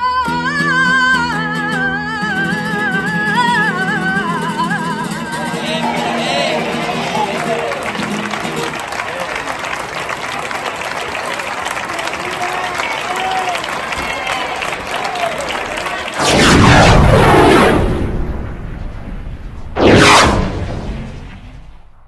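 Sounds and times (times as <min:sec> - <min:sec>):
flamenco song: 0:00.0 - 0:08.8
audience applauding: 0:05.4 - 0:16.2
shouts from audience: 0:05.5 - 0:09.5, 0:11.2 - 0:16.2
rush of noise with sweeping tones: 0:16.2 - 0:22.0.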